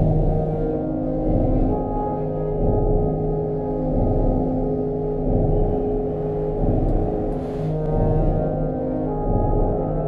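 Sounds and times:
dark droning ambient music: 0.0s - 10.0s.

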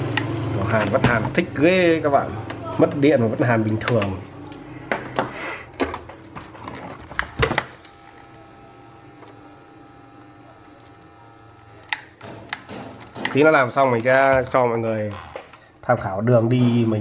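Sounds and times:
hand tools clicking on circuit board: 11.8s - 13.5s.

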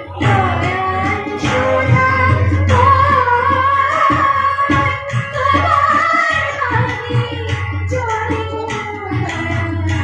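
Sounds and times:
harmonium: 0.0s - 10.0s
tabla: 0.0s - 10.0s
woman singing: 0.0s - 10.0s.

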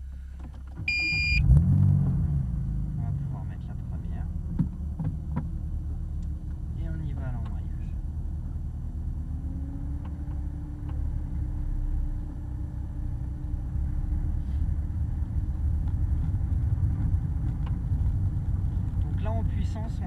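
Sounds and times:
car engine droning at low revs: 0.0s - 20.0s.

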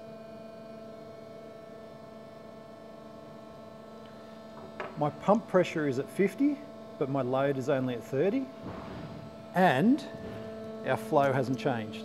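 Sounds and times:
hydraulic pump humming: 0.0s - 12.0s.

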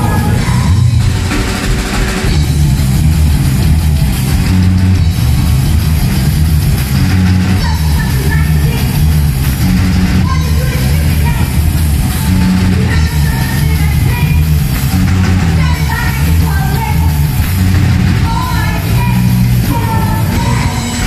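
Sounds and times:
woman singing: 0.0s - 1.0s, 12.7s - 14.5s, 15.6s - 17.2s, 18.2s - 21.0s
punk rock band playing: 0.0s - 21.0s.

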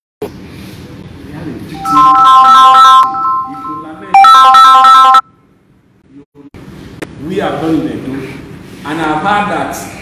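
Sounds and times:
electronic ringtone melody: 1.8s - 5.3s.

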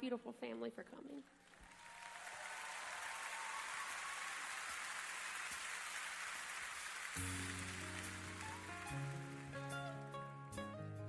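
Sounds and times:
audience applauding and cheering: 1.3s - 10.2s.

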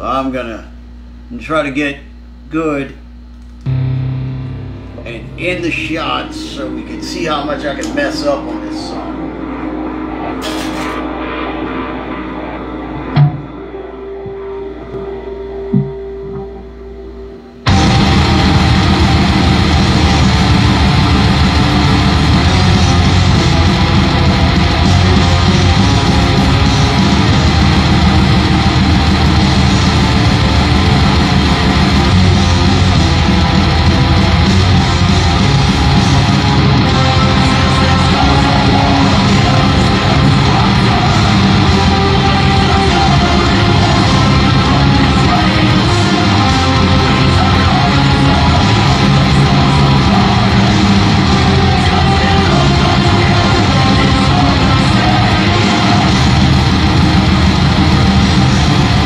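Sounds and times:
distorted electric guitar metal riffing: 3.6s - 59.0s.

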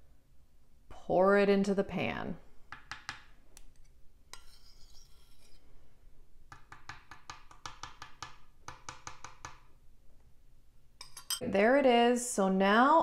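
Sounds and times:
metal spoon scraping glass bowl: 3.8s - 5.7s, 11.0s - 11.4s
spoon clinking against glass: 11.0s - 11.4s.

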